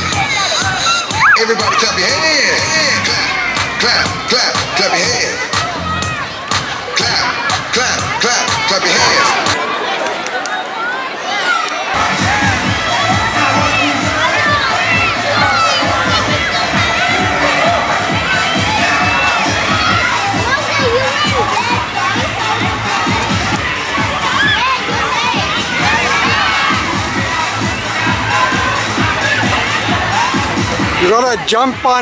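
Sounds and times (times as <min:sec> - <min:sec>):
pop song beat: 0:00.0 - 0:09.5, 0:12.0 - 0:31.2
children shouting and cheering: 0:00.0 - 0:32.0.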